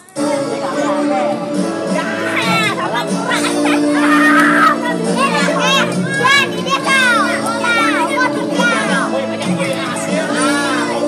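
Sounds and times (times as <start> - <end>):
background music with held tones: 0.0 - 11.0
children calling and shouting: 0.0 - 11.0.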